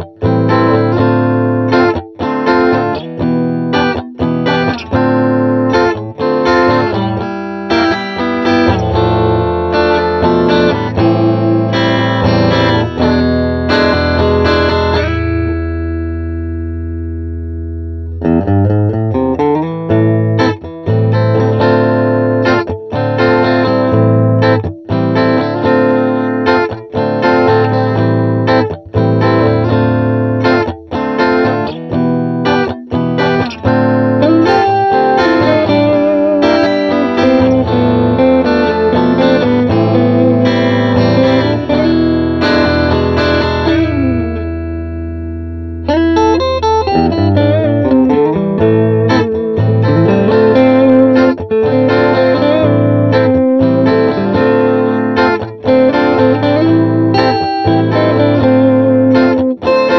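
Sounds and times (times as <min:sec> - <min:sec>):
electric guitar chords and riffs: 0:00.0 - 0:59.9.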